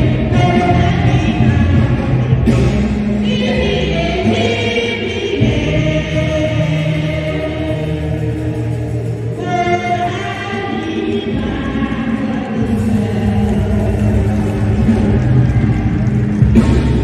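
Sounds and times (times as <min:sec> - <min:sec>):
woman singing into a microphone: 0:00.0 - 0:15.7
choir voices sustained: 0:03.2 - 0:17.0.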